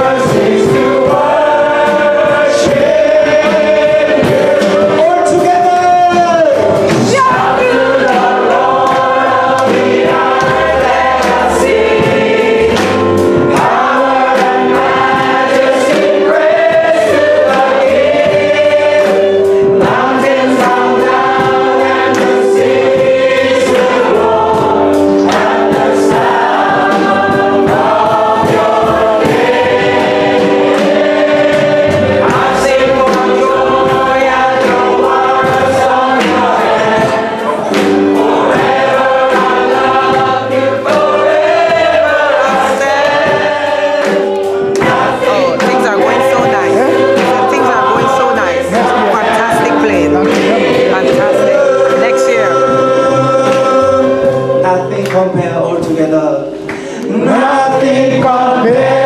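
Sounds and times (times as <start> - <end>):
piano: 0.0 - 59.0
vocal group singing in harmony: 0.0 - 59.0.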